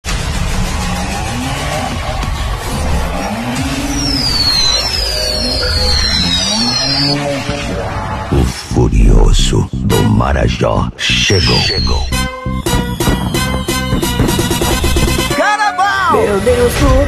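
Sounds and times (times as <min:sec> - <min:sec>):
vehicle engine revving: 0:00.0 - 0:07.8
music: 0:00.0 - 0:08.6, 0:09.5 - 0:10.3, 0:11.4 - 0:17.0
short high falling squeals: 0:03.0 - 0:08.0, 0:11.3 - 0:14.9.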